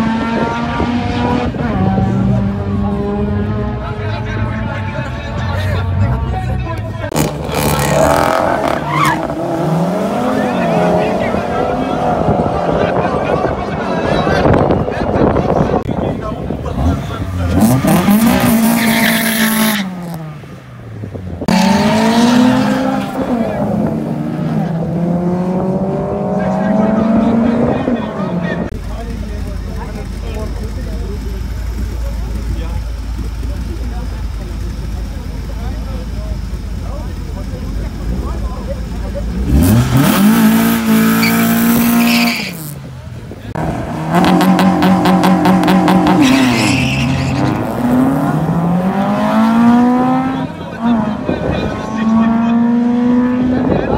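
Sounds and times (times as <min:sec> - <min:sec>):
racing car engines revving: 0:00.0 - 0:53.9
tyre squeal: 0:07.5 - 0:09.4, 0:41.2 - 0:42.8, 0:46.2 - 0:47.8.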